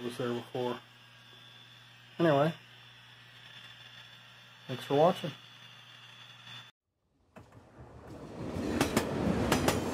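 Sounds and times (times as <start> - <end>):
train running on rails: 8.1 - 9.9.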